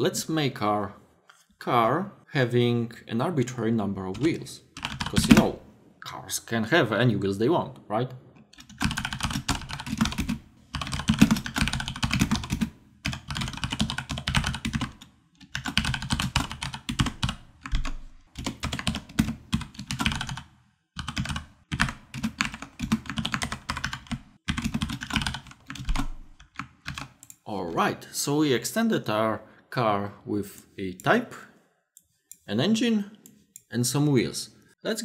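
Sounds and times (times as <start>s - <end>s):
fast typing on keyboard: 4.2s - 5.6s, 8.5s - 27.3s.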